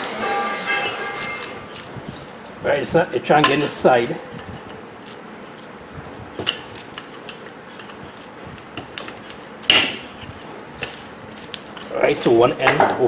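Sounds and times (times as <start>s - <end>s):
small metal clicks and scrapes: 0.8s - 2.6s, 4.4s - 12.4s.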